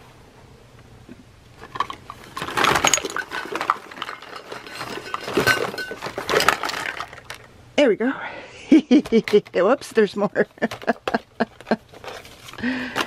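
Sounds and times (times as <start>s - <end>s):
plastic bottles clattering: 1.6s - 7.5s, 9.0s - 9.6s, 10.5s - 13.0s.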